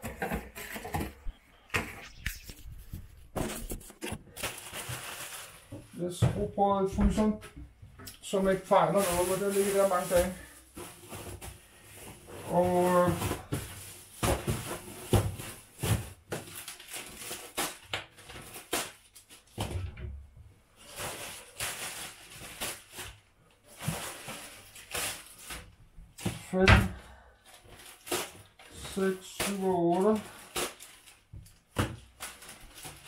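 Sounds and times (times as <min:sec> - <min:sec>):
plastic bags rustling: 0:03.1 - 0:07.3, 0:08.2 - 0:19.6, 0:20.8 - 0:33.0.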